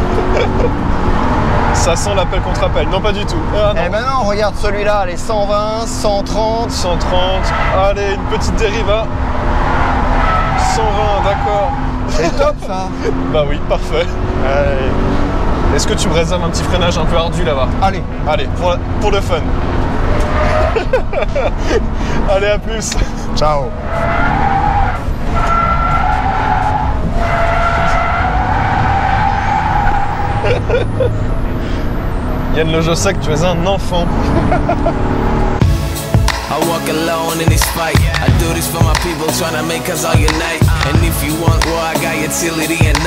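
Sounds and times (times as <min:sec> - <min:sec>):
tyres squealing: 0:00.0 - 0:13.6, 0:23.4 - 0:32.9.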